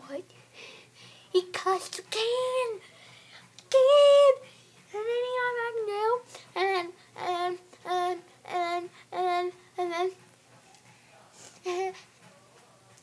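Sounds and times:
boy singing: 0:01.3 - 0:02.8, 0:03.6 - 0:10.2, 0:11.6 - 0:12.0.

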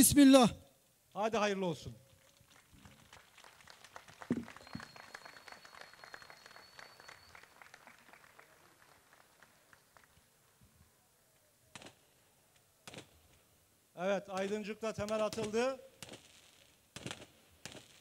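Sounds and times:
faint crowd applause: 0:02.1 - 0:11.1
thin high whistle: 0:04.6 - 0:07.6.

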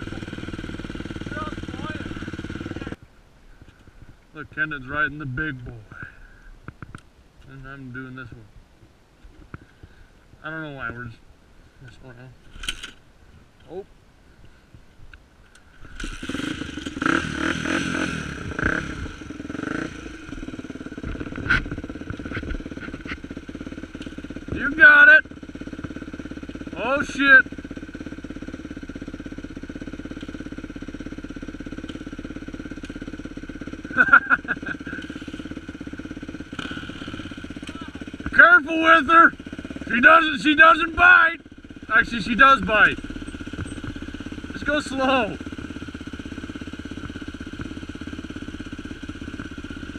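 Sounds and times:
dirt bike engine revving and idling: 0:00.0 - 0:03.0, 0:04.4 - 0:06.9, 0:15.6 - 0:49.9.

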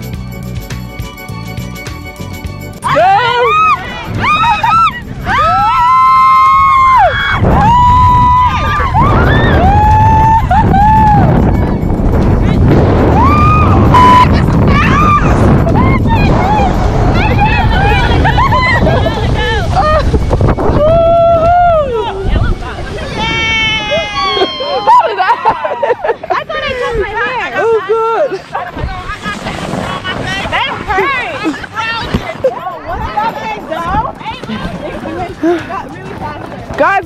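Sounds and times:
women screaming: 0:02.8 - 0:11.4, 0:13.1 - 0:26.1
rush of wind and snow: 0:03.9 - 0:24.2, 0:28.4 - 0:33.7.

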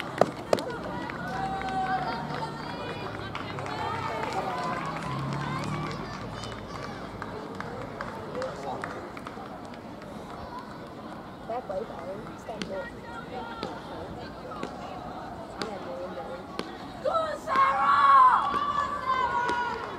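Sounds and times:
quiet chatter: 0:00.0 - 0:19.9
spectators calling out and cheering: 0:00.0 - 0:19.9.

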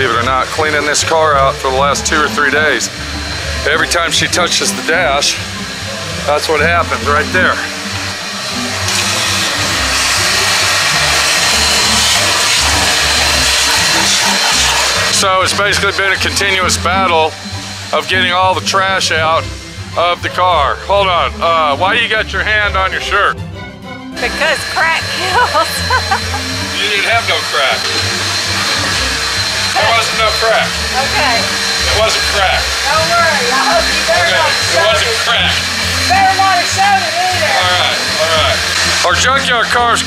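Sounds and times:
vacuum cleaner running: 0:00.0 - 0:40.0.

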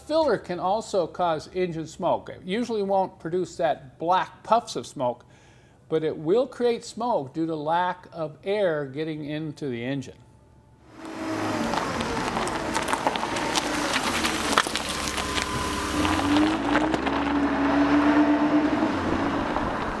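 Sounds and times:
vehicle engine clattering: 0:11.0 - 0:20.0.

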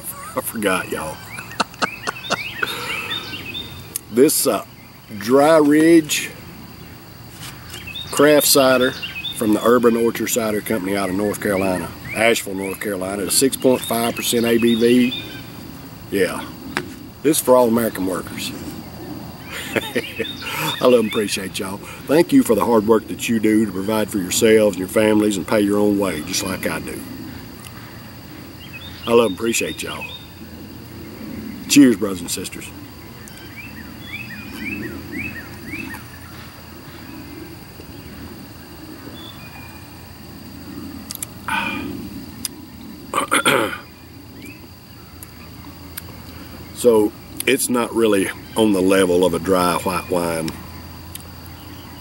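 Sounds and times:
birds chirping: 0:00.0 - 0:52.0.

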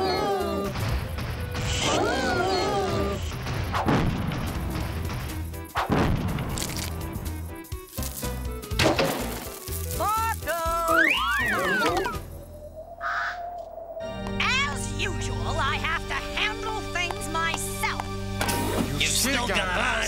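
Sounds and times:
cartoon music: 0:09.9 - 0:12.3.

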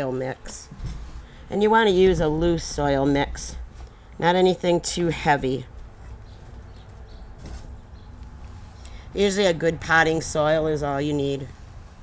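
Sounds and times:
moss rustling: 0:06.8 - 0:08.8.

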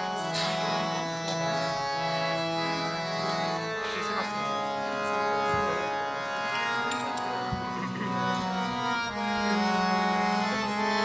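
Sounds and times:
held chord: 0:00.0 - 0:11.0.

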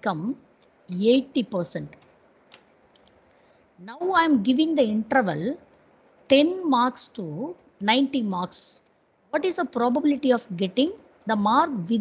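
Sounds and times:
faint keyboard keystrokes: 0:01.8 - 0:03.5, 0:05.6 - 0:06.4, 0:08.8 - 0:10.5.

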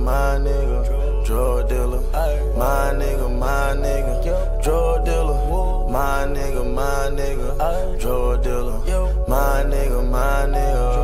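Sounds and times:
chant-like melodic line: 0:00.0 - 0:11.0
hip-hop beat with heavy bass: 0:00.0 - 0:11.0.

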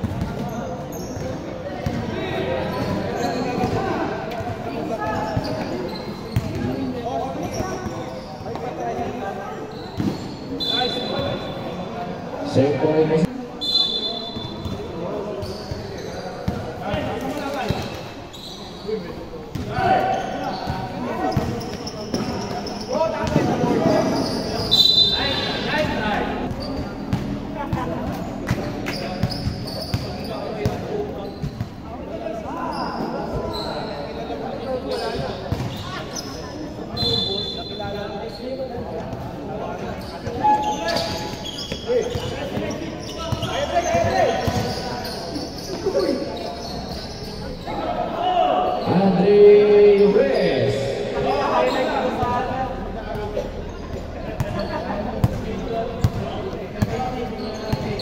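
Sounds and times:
players' voices echoing: 0:00.0 - 0:58.0
basketball bouncing on hard court: 0:44.0 - 0:44.8.

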